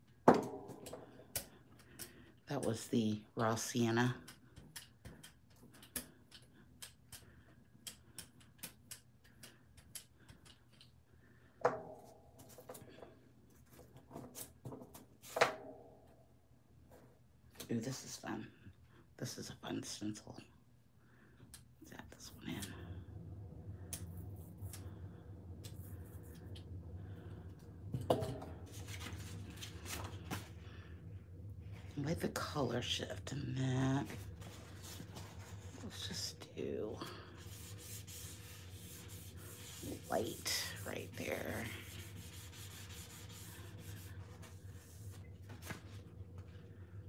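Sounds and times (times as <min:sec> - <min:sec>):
steady low hum: 0:00.0 - 0:47.0
paintbrush scratching on plate: 0:37.4 - 0:45.0.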